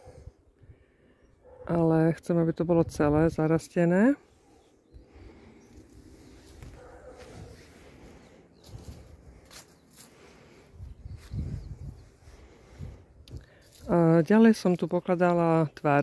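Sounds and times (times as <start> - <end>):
footsteps on grass and soil: 5.7 - 12.7, 13.4 - 14.0.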